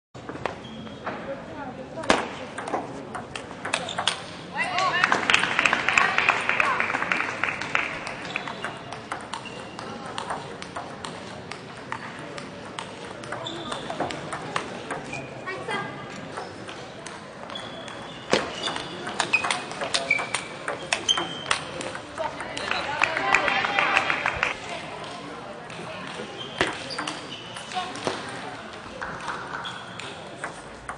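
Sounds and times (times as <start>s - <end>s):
murmur of background voices: 0.4s - 30.9s
shoes squeaking on floor: 0.6s - 1.2s, 8.2s - 10.0s, 13.3s - 14.1s, 17.5s - 21.8s, 26.3s - 27.9s, 29.6s - 30.0s
table tennis ball clicking: 2.6s - 4.3s, 8.0s - 15.1s.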